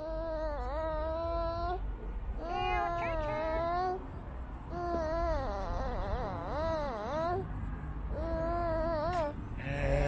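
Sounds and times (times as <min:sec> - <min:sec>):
baby whining cry: 0:00.0 - 0:01.8, 0:02.4 - 0:04.0, 0:04.7 - 0:07.5, 0:08.1 - 0:10.0.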